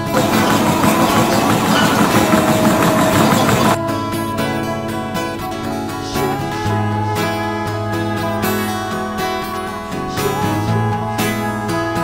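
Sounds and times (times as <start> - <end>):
running footfalls on treadmill belt: 0.0 - 3.8
thin steady whine: 0.0 - 3.8
treadmill belt and motor rushing: 0.0 - 3.8.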